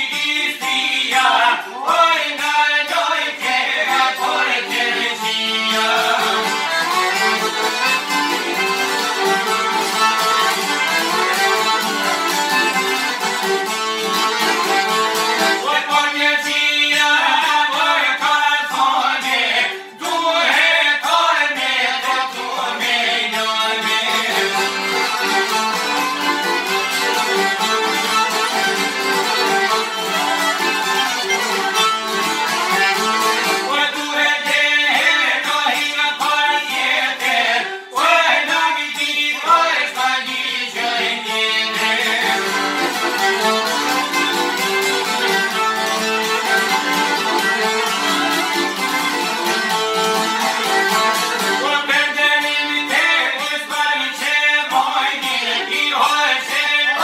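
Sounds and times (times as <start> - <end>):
violin: 0.0 - 57.0
plucked lutes: 2.4 - 15.8, 23.6 - 36.6, 41.2 - 53.4
piano accordion: 4.9 - 15.6, 24.4 - 33.8, 42.2 - 51.6.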